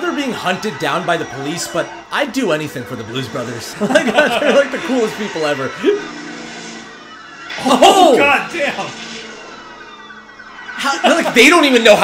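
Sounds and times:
police sirens wailing: 0.0s - 12.0s.

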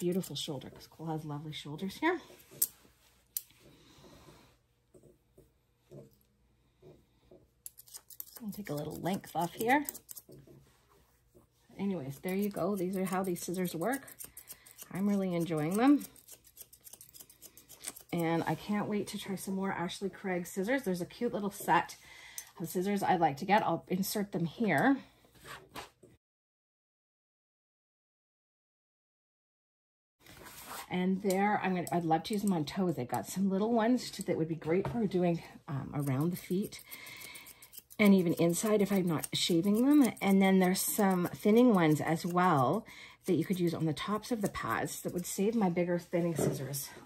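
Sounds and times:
faint soft rustles: 30.2s - 31.0s.

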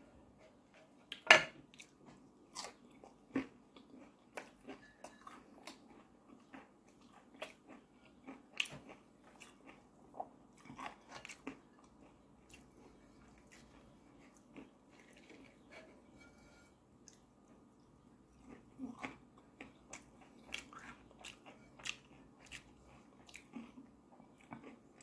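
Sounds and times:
chewing: 1.1s - 25.0s
crunching fried batter: 1.9s - 25.0s.

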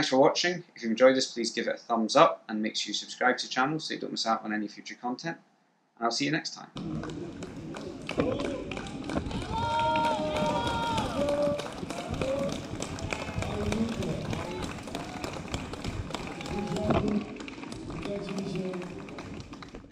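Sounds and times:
spectators calling out: 7.8s - 17.3s.

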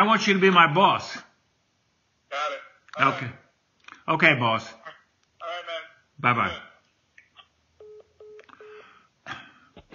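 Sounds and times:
phone call-ended beeps: 7.8s - 8.9s.

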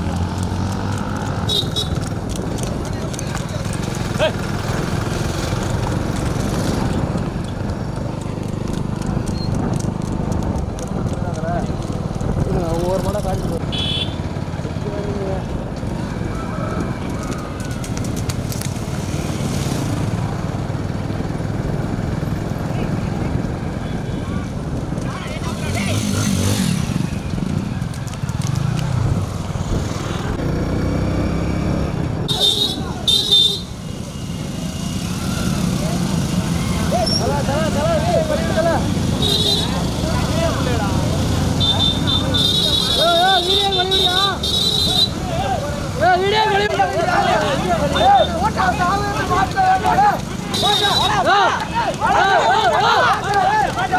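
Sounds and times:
motorcycle engines running: 0.0s - 53.9s
men shouting: 36.6s - 41.0s, 41.7s - 53.9s.

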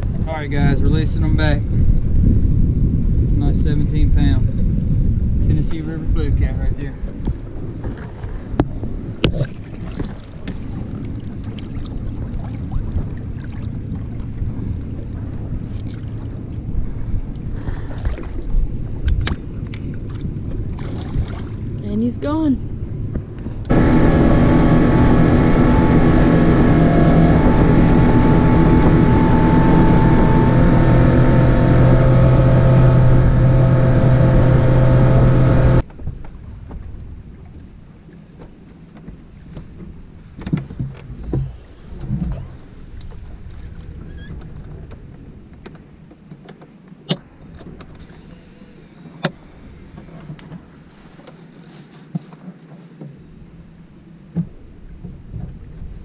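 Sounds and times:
outboard motor running: 6.8s - 21.8s, 22.7s - 35.9s.

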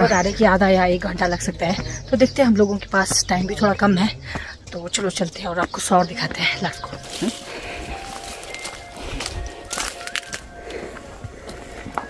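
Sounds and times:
footsteps on dirt trail: 0.0s - 12.0s
soft background music: 0.0s - 12.0s.

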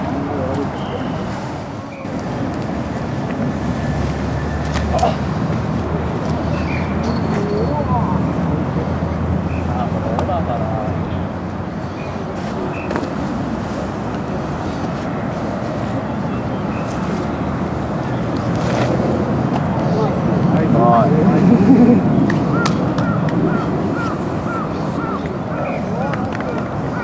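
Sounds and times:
people talking: 0.0s - 2.8s, 4.7s - 5.3s, 7.0s - 11.3s, 19.6s - 22.3s, 23.5s - 27.0s.

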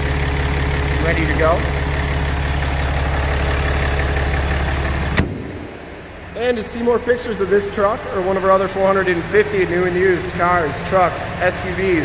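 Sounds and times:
diesel engine idling: 0.0s - 12.0s
engine switch click: 5.1s - 5.4s.

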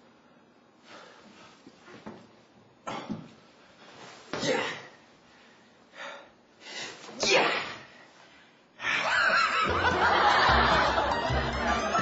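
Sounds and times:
man laughing: 8.9s - 12.0s
music with low beat: 9.7s - 12.0s.

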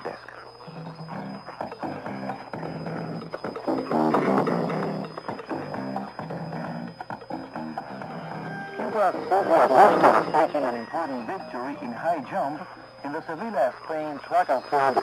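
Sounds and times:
instrumental music over radio: 0.0s - 15.0s.

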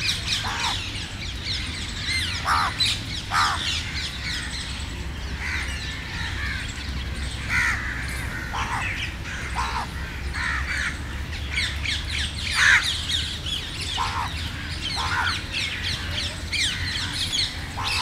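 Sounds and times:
parakeets calling shrilly: 0.0s - 4.8s, 5.4s - 18.0s.

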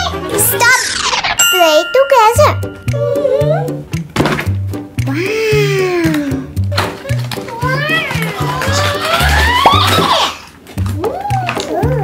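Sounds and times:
child exclaiming: 7.1s - 9.6s.

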